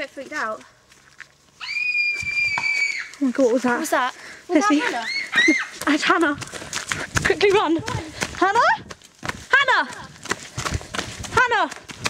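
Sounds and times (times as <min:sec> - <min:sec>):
long shrill scream: 0:01.6 - 0:03.2.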